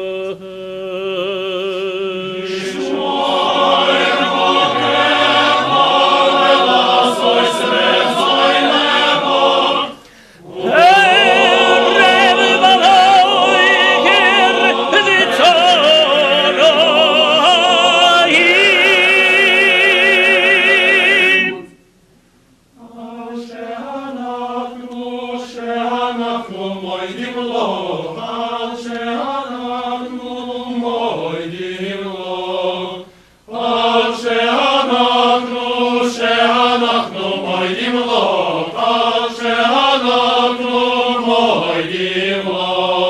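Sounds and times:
male choir singing: 0:00.0 - 0:21.8, 0:22.8 - 0:43.0.

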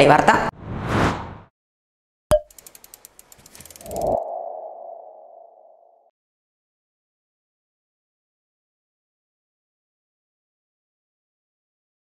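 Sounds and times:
rapid ticks building to swell: 0:02.5 - 0:05.8.

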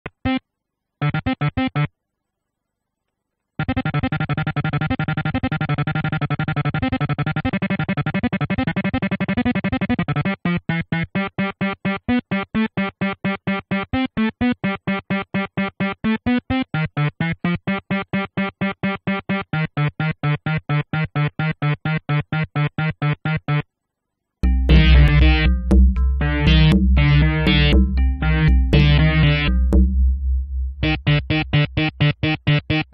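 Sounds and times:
fast overlapping synth notes: 0:24.4 - 0:32.9
synth arpeggio: 0:24.4 - 0:32.9.

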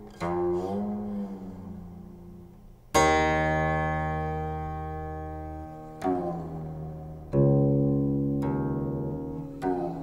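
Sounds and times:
zither note plucked: 0:00.0 - 0:10.0.

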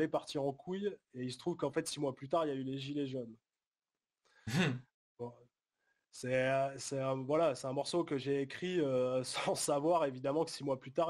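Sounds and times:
brief vocal sound: 0:04.5 - 0:04.8
person murmuring mmh: 0:04.5 - 0:04.8.

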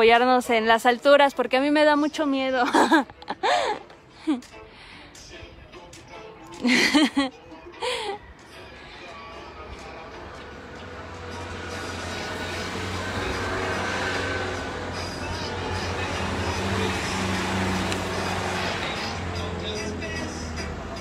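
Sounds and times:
vehicle engine humming: 0:08.3 - 0:21.0.

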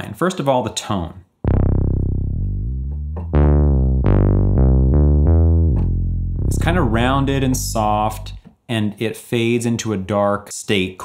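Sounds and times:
soft synthesizer bass line: 0:01.4 - 0:08.4.

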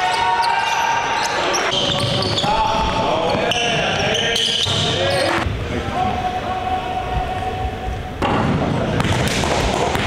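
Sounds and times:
voices: 0:00.6 - 0:09.1
basketball bouncing on hardwood court: 0:09.0 - 0:10.0.

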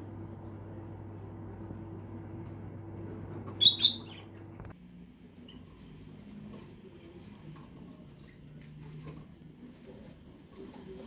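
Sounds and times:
steady low hum: 0:00.0 - 0:04.8
bird chirping high-pitched: 0:03.6 - 0:04.4.

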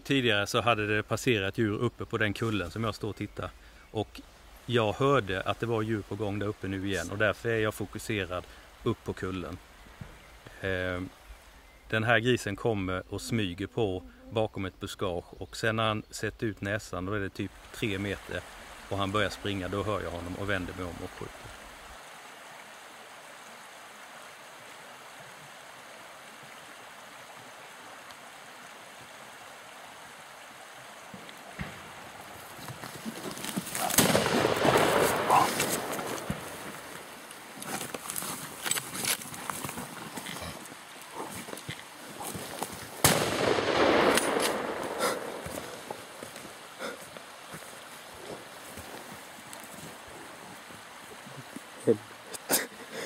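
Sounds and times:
outdoor background hiss: 0:00.0 - 0:53.0
gunshots: 0:33.8 - 0:36.5, 0:43.0 - 0:45.8.

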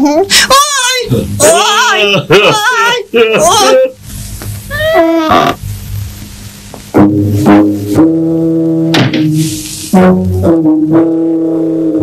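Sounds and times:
low wind instrument notes: 0:09.9 - 0:12.0.

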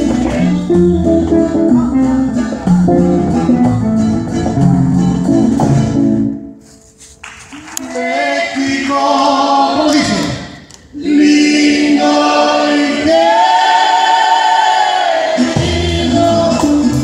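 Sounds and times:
conga drums: 0:00.0 - 0:06.3, 0:14.9 - 0:17.0
plucked guitars: 0:00.0 - 0:06.6
bass: 0:00.0 - 0:17.0
sustained notes: 0:00.4 - 0:06.6.

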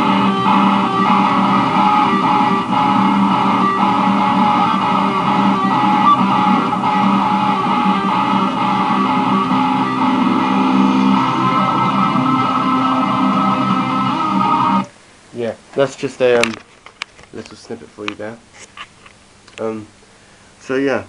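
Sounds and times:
guitar playing: 0:00.0 - 0:14.9.

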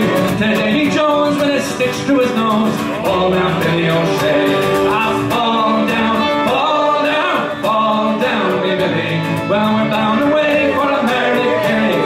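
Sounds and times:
fiddle: 0:00.0 - 0:12.0
person singing: 0:00.0 - 0:12.0
strummed acoustic guitar: 0:00.0 - 0:12.0.

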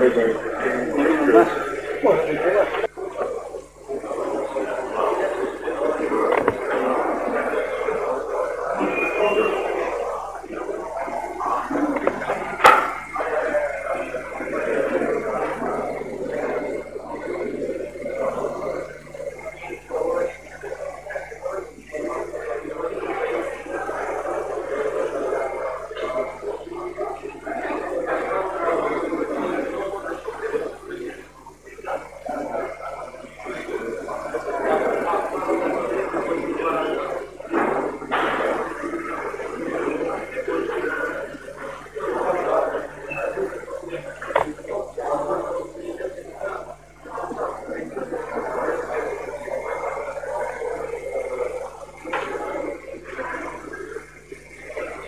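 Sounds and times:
faint low hum: 0:00.0 - 0:55.0
people talking: 0:00.0 - 0:55.0.

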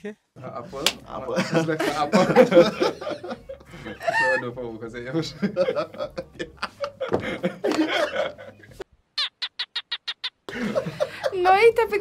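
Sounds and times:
people laughing: 0:01.3 - 0:08.8, 0:09.6 - 0:11.5
people talking: 0:11.2 - 0:12.0.

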